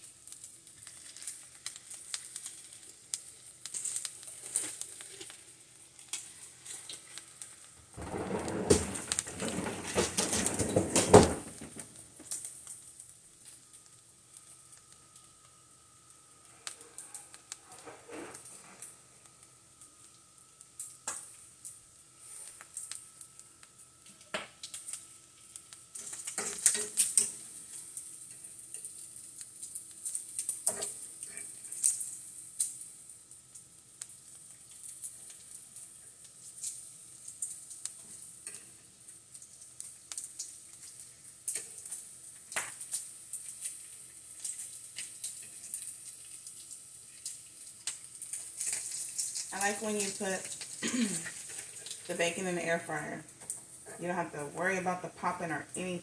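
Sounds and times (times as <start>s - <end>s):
bacon sizzling in a skillet: 0.0s - 56.0s
fork scraping a pan: 26.0s - 27.4s.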